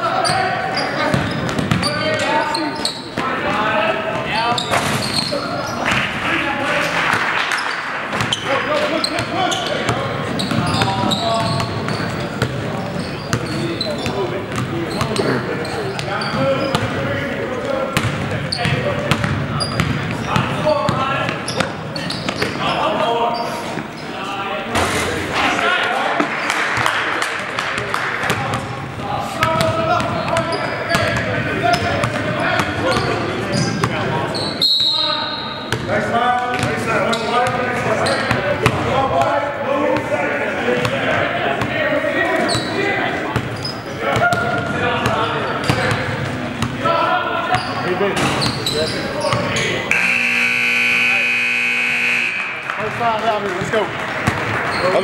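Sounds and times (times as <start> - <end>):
scoreboard horn: 49.9 - 52.6.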